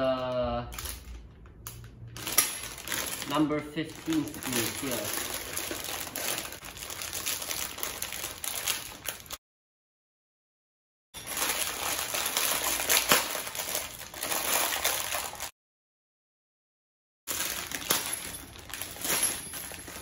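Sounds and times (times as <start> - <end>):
bag of screws crinkling and clinking: 0.7 - 9.4, 11.2 - 15.5, 17.3 - 20.0.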